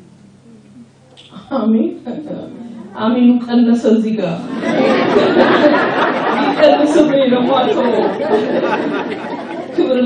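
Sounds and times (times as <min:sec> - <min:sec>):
woman talking into microphone: 0:00.6 - 0:04.6, 0:06.4 - 0:08.2, 0:09.7 - 0:10.0.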